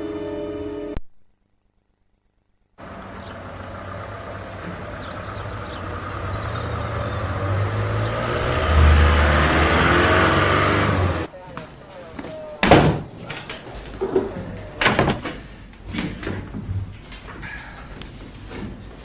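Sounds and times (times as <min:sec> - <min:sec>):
road traffic: 0:02.8 - 0:11.3
van passing close: 0:02.8 - 0:11.3.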